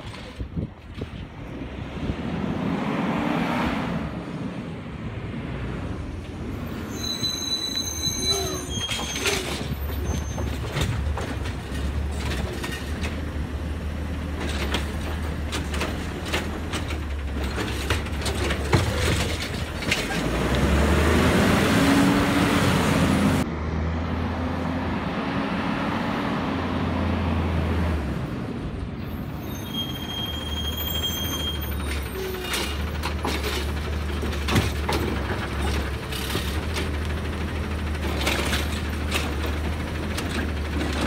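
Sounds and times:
garbage truck diesel engine: 4.0s - 41.0s
high brake squeal: 6.6s - 10.7s, 29.0s - 32.8s.

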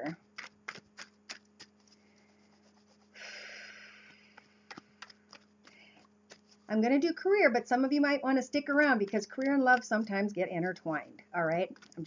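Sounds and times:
faint steady hum: 0.0s - 12.0s
cards clicking: 0.4s - 2.0s, 11.5s - 12.0s.

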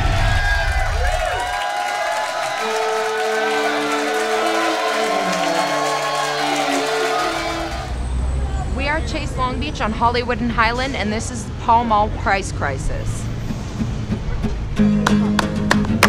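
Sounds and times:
intro music sting: 2.5s - 7.9s
woman speaking: 8.8s - 13.2s.

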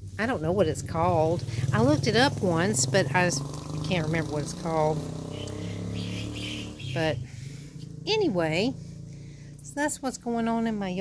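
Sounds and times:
faint bird chirps: 5.2s - 7.2s.

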